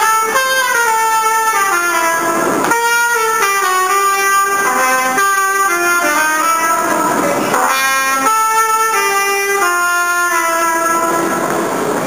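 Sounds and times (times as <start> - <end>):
trumpet playing a melody: 0.0 - 11.8
subway train rushing past: 0.0 - 12.0.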